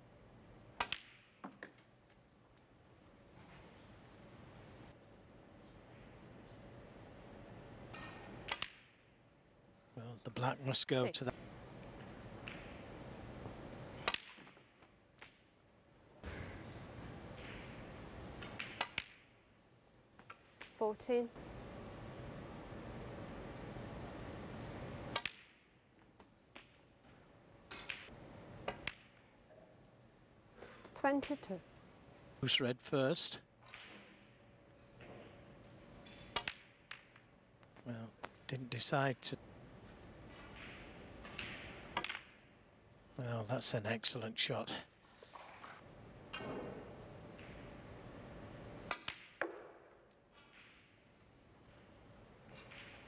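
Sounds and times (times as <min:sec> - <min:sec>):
snooker balls clicking: 0:11.9 - 0:15.4, 0:17.3 - 0:19.3, 0:27.7 - 0:29.4, 0:36.1 - 0:38.4, 0:40.3 - 0:42.6, 0:48.9 - 0:53.0.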